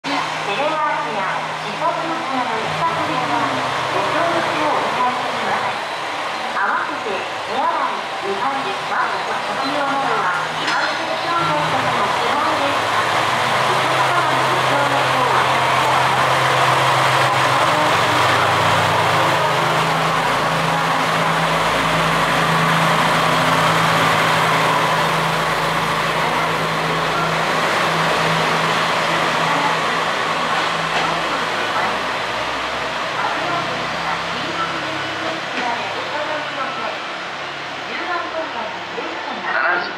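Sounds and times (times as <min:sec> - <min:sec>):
diesel railcar engine drone: 0:00.0 - 0:39.9
train wheels on rails: 0:01.8 - 0:38.4.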